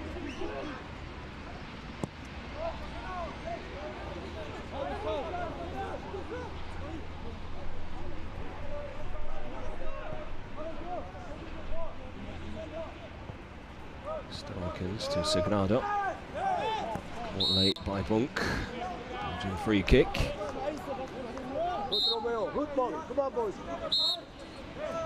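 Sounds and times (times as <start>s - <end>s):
players shouting calls: 13.9s - 25.0s.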